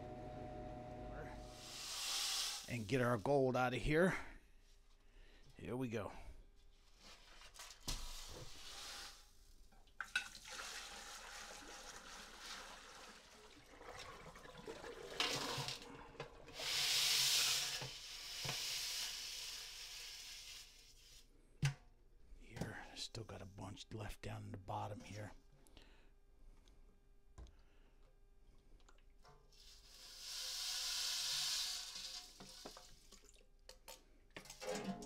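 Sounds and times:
water pouring and splashing: 1.6s - 3.2s, 10.0s - 20.5s, 28.8s - 33.8s, 34.4s - 35.0s.

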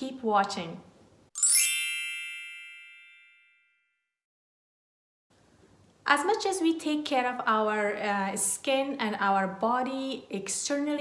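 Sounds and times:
bright chime: 1.4s - 3.8s.

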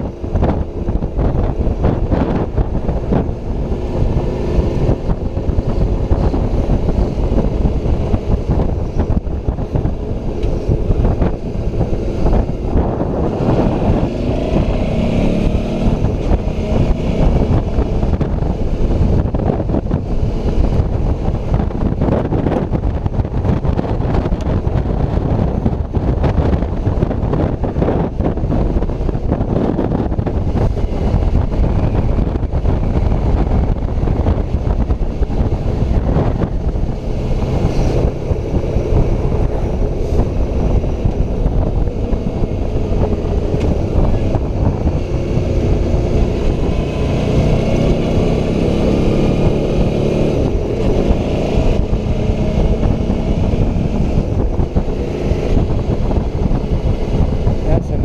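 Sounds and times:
motorcycle engine running: 0.0s - 58.0s
wind buffeting microphone: 0.0s - 58.0s.

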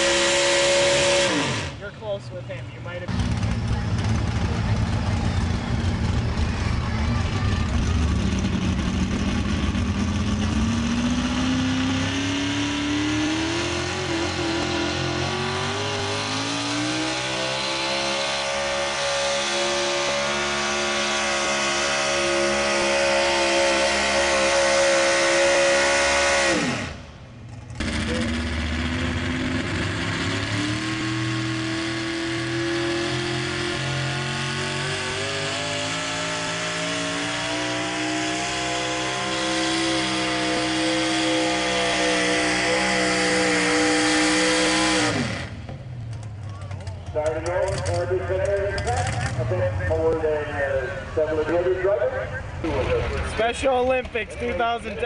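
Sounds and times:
pickup truck engine at full throttle: 0.0s - 55.0s
second truck engine running hard: 0.0s - 55.0s.

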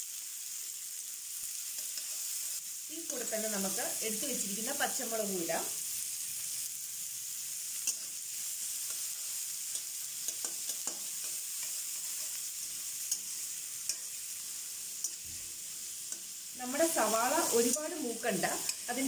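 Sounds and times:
onions sizzling in a wok: 0.0s - 19.0s
spatula scraping and tapping a pan: 7.8s - 8.1s, 9.7s - 12.4s.

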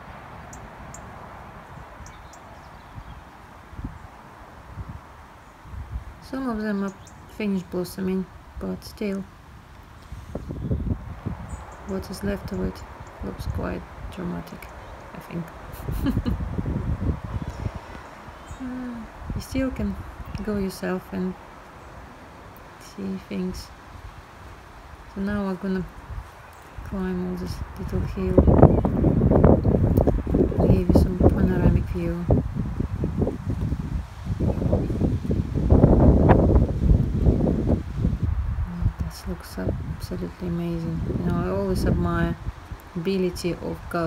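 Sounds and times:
low buffeting on microphone: 0.0s - 44.0s.

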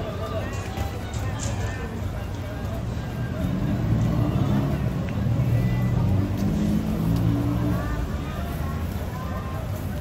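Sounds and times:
voices of passers-by: 0.0s - 10.0s.

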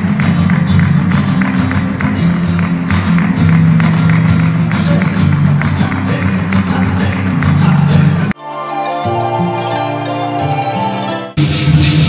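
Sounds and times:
flamenco guitar playing: 0.0s - 12.0s.

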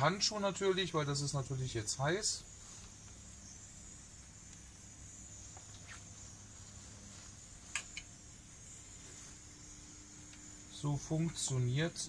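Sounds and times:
gas burner hissing: 0.0s - 12.0s.

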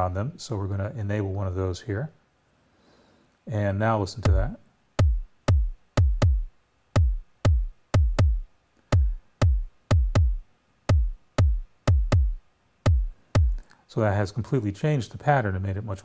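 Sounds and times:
deep drum machine thumps: 4.2s - 13.7s.

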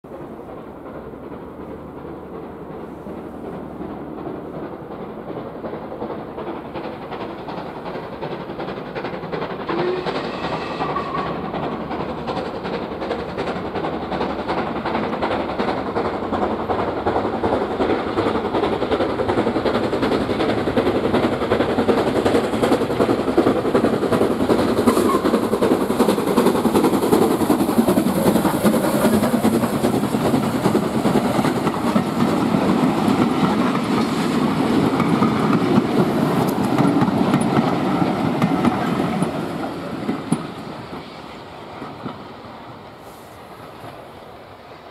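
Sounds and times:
steam locomotive passing: 0.0s - 44.9s.

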